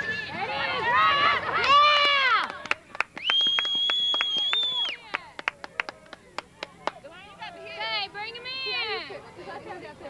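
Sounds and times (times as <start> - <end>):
sharp hand claps: 1.6 - 7.0
high steady whistle: 3.2 - 5.0.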